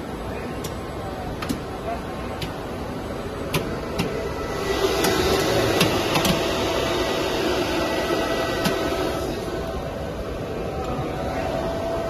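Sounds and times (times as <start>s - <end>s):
machinery hum: 0.0s - 12.0s.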